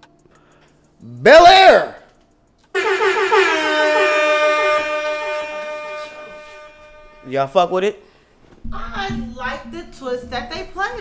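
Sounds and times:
gliding synthetic tone: 0:02.8 - 0:07.3.

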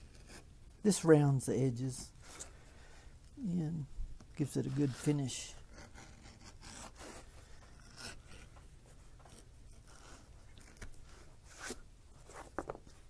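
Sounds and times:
leather edger scraping: 0:04.4 - 0:11.8.

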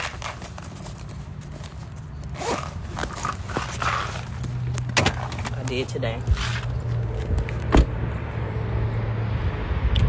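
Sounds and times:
steady low rumble: 0:02.8 - 0:10.0.

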